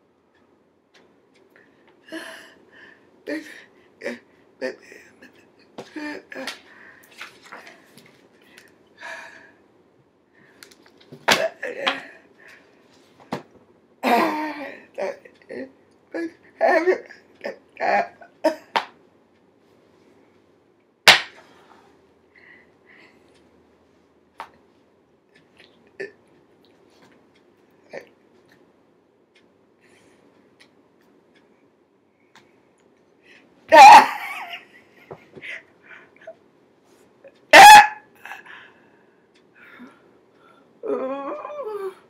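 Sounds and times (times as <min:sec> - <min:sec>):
woman coughing: 0:14.0 - 0:15.2, 0:33.7 - 0:34.4
woman shrieking: 0:33.7 - 0:34.2.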